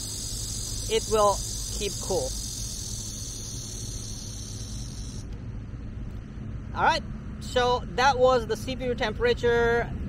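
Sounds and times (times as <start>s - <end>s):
insect buzz: 0.0s - 5.3s.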